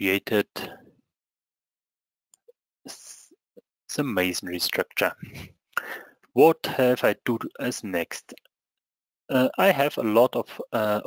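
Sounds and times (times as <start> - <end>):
short breath: 5.3 - 6.2.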